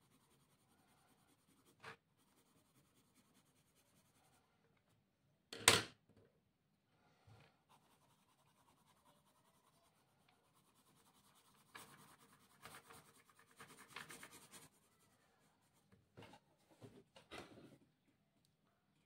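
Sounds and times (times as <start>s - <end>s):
pencil scratching on paper: 0.0s - 4.5s, 7.6s - 15.9s.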